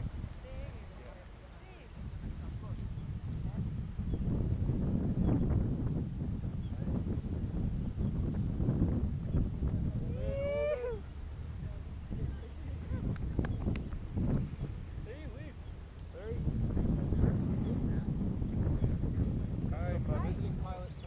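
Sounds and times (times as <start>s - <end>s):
wind buffeting microphone: 0.0s - 21.0s
faint bird chirps: 6.4s - 8.1s, 8.7s - 13.8s.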